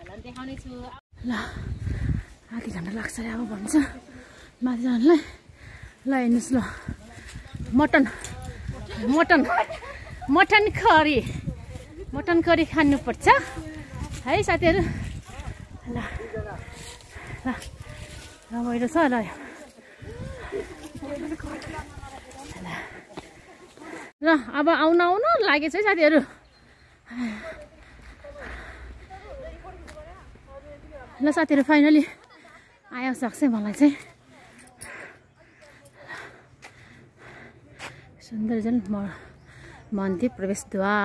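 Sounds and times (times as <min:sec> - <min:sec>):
people talking: 0:02.5 - 0:05.3, 0:06.0 - 0:26.3, 0:27.1 - 0:36.4, 0:37.2 - 0:41.0.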